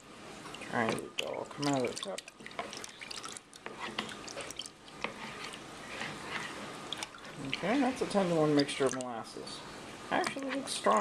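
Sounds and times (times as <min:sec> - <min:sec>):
liquid dripping and sloshing: 0:00.2 - 0:09.3
metal cup scraping in bowl: 0:03.6 - 0:08.4.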